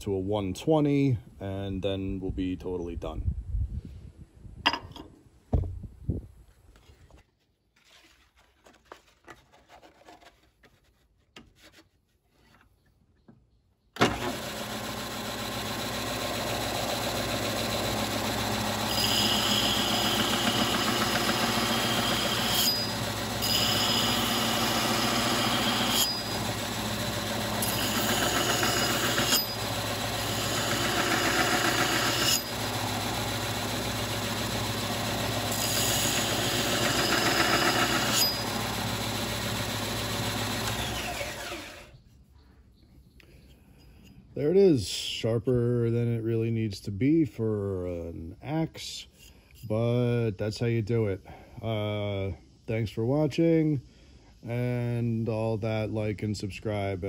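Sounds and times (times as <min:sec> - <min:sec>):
belt sander running: 0:14.0 - 0:41.9.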